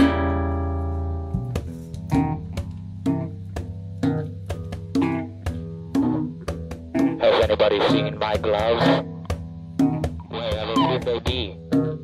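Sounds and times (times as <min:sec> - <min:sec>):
guitar chord ringing: 0:00.0 - 0:12.0
rock band instrumental: 0:00.0 - 0:12.0.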